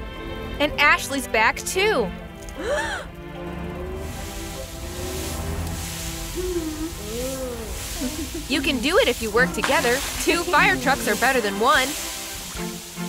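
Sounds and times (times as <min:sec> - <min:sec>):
background music: 0:00.0 - 0:13.0
cartoon fire hose spraying hiss: 0:03.9 - 0:13.0.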